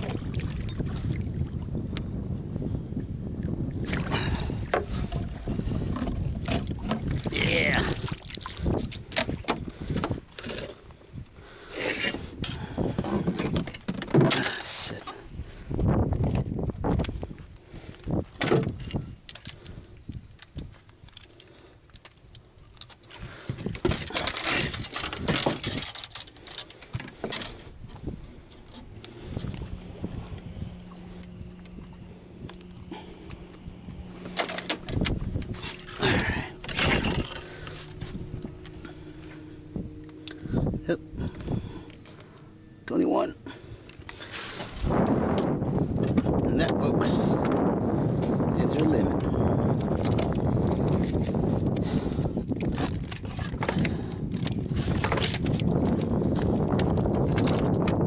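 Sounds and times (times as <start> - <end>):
fish handling clicks and bumps: 3.8 - 10.9, 11.7 - 15.2, 16.1 - 17.2, 17.8 - 58.0
knocks and scrapes on boat deck: 3.9 - 7.4, 8.6 - 10.9, 11.8 - 15.2, 18.1 - 19.2, 23.4 - 42.4, 44.0 - 58.0
fish knocking and slapping on deck: 12.9 - 14.6, 44.6 - 46.8.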